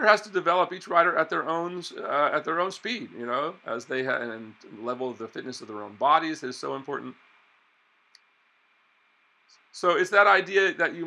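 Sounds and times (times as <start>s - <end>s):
man speaking: 0.0s - 7.1s, 9.8s - 11.0s
faint click: 8.1s - 8.3s.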